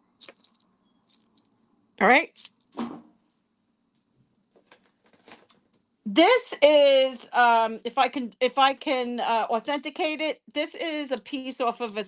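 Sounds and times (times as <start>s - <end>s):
chain bracelet links clinking: 0.1s - 1.6s.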